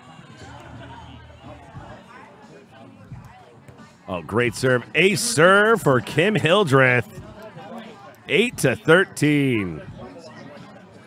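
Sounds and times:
distant crowd murmur: 0.0s - 4.1s, 6.2s - 11.0s.

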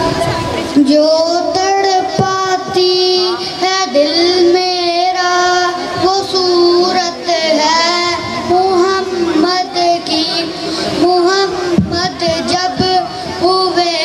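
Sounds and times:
boy singing into a microphone: 0.0s - 14.0s.

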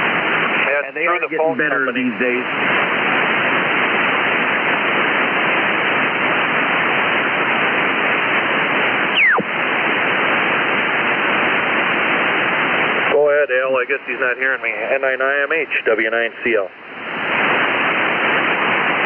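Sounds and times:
radio band noise hiss: 0.0s - 19.0s
voice over radio: 0.6s - 2.5s, 13.1s - 16.7s
whistle gliding down in pitch: 9.1s - 9.5s.

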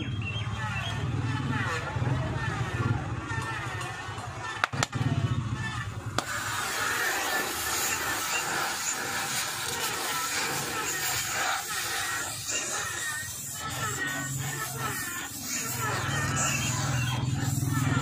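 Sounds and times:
gas torch hissing: 6.2s - 18.0s.

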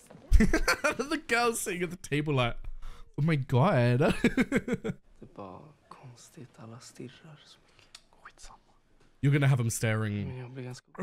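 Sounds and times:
soft whispered dialogue: 5.2s - 9.2s.

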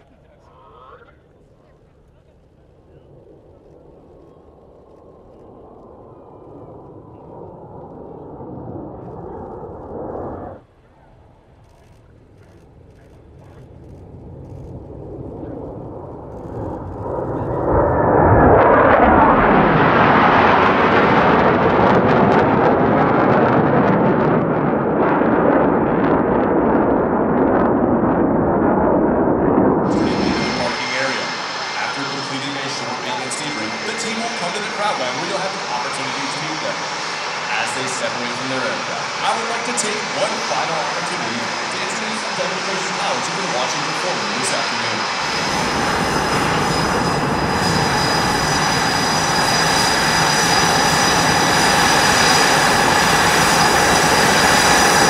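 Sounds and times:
jets taxiing whine: 0.0s - 26.2s, 26.8s - 55.0s
jet engines roaring overhead: 0.0s - 55.0s.

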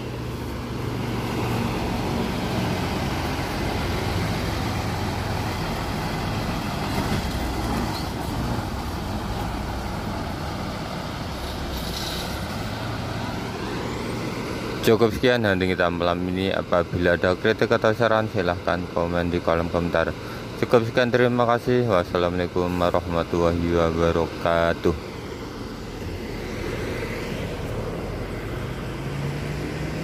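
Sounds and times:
bus diesel engine passing: 0.0s - 30.0s.

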